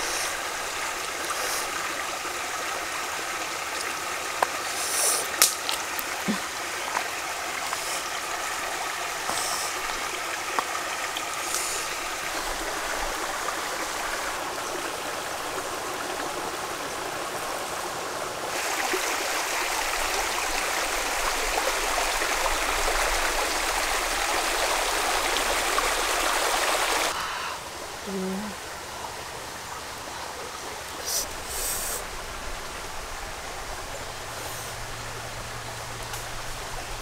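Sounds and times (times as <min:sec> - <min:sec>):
stream rushing over stones: 0:00.0 - 0:28.0, 0:28.6 - 0:37.0.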